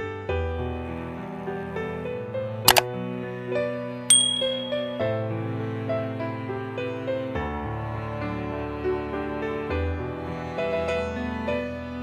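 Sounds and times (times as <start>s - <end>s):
bright bell ding: 4.1s - 5.1s.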